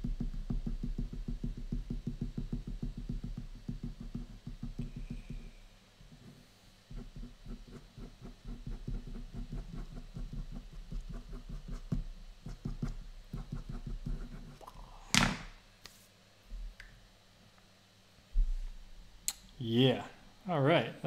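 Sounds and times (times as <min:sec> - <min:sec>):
pen tapping on paper: 0:00.1 - 0:05.4, 0:07.0 - 0:14.2.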